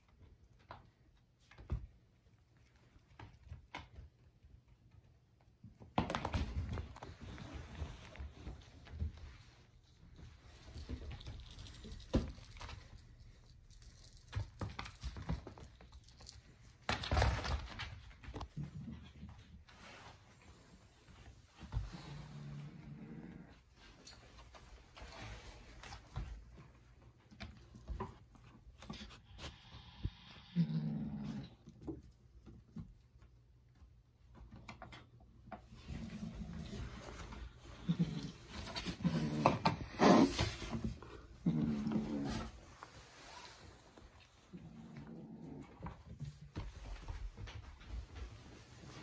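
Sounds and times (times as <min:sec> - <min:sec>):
kittens scuffling: 0:00.0 - 0:30.4, 0:31.7 - 0:49.0
kitten growling low: 0:30.1 - 0:31.7, 0:37.8 - 0:40.5, 0:41.1 - 0:42.6, 0:44.5 - 0:46.0.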